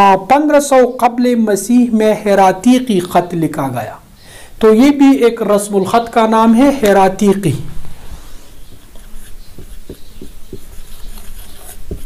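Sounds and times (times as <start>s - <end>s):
marker on whiteboard: 8.7s - 12.0s.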